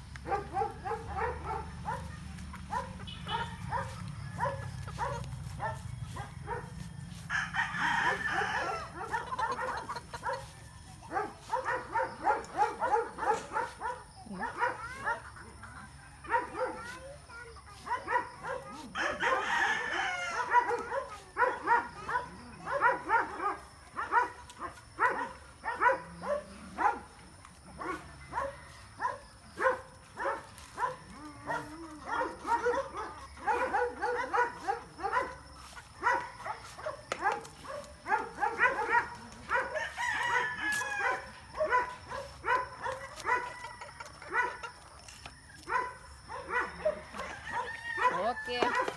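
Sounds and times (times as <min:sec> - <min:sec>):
farm animals calling: 0:00.0 - 0:48.9.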